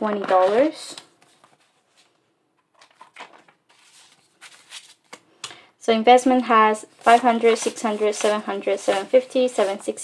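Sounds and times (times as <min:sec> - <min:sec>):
banknotes rustling and flicking: 0:00.0 - 0:05.3, 0:06.5 - 0:10.0.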